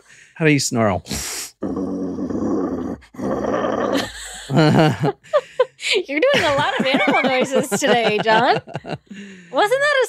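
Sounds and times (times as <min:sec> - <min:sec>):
man growling like a wolf: 0:01.1 - 0:04.9.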